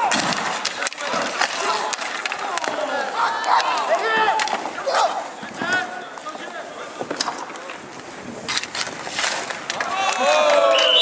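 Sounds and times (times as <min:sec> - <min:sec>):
hockey stick clacks: 0:00.0 - 0:04.8, 0:05.5 - 0:11.0
players calling out: 0:00.0 - 0:07.0, 0:09.7 - 0:11.0
skate wheels rolling and scraping: 0:00.0 - 0:11.0.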